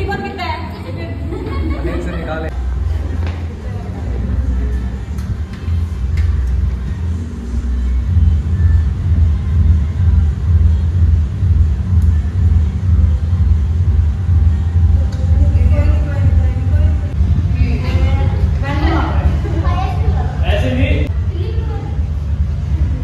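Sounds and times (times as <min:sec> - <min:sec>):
voices in room: 0:00.0 - 0:23.0
deep booming bass: 0:07.9 - 0:23.0.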